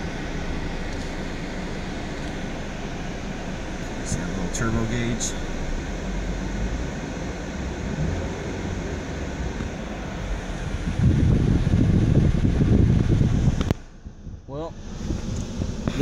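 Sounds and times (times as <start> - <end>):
car cabin rumble and hiss: 0.0 - 16.0.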